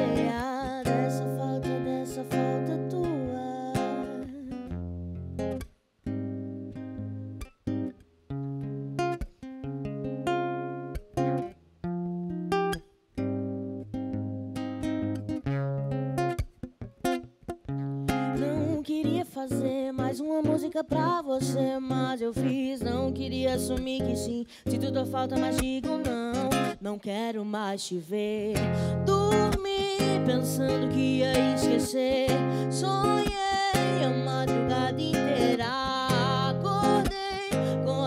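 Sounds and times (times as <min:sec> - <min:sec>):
fingerpicked classical guitar: 0:00.0 - 0:38.0.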